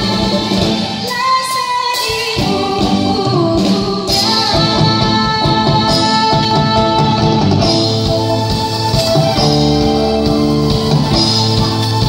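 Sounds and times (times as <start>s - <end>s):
woman singing through pa: 0.0s - 7.9s
live band playing: 0.0s - 12.0s.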